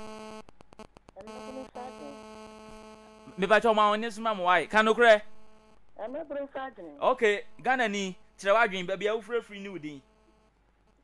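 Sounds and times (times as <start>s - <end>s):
electrical hum on phone line: 0.0s - 11.0s.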